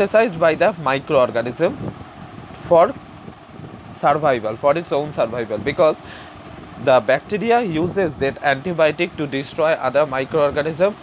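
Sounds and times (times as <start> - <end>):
steady background hiss: 0.0 - 11.0.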